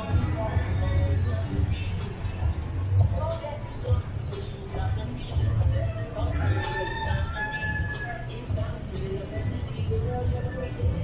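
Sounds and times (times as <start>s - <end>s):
low street rumble: 0.0s - 11.0s
rooster crowing: 6.2s - 8.4s.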